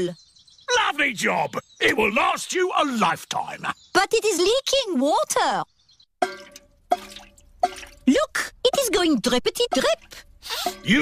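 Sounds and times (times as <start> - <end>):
water drips plinking into bucket: 6.2 - 11.0.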